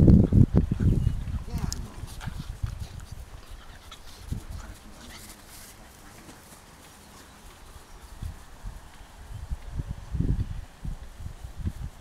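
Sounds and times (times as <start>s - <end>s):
puppies scuffling on grass: 0.7s - 12.0s.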